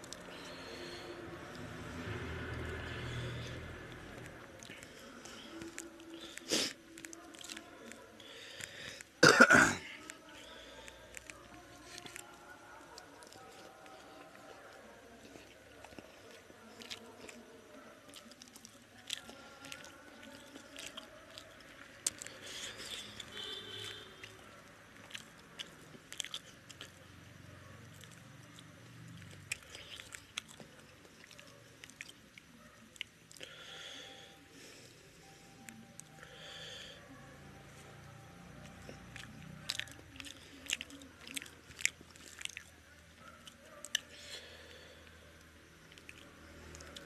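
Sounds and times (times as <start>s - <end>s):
person chewing food: 0.0s - 9.3s, 10.0s - 37.0s, 37.7s - 47.0s.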